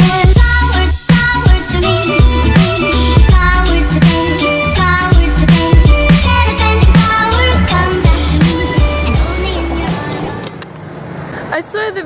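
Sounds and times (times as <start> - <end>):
music: 0.0 - 10.5
city street traffic hum: 0.0 - 12.0
woman talking: 11.5 - 12.0.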